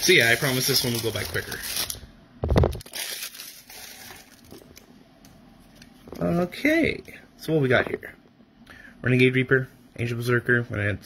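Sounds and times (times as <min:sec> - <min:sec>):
plastic wrapper crinkling: 0:00.0 - 0:04.9.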